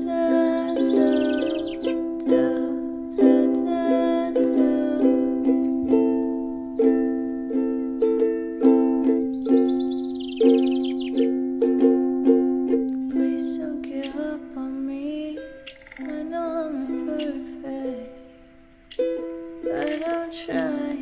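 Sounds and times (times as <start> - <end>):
plucked string instrument melody: 0.0 - 21.0.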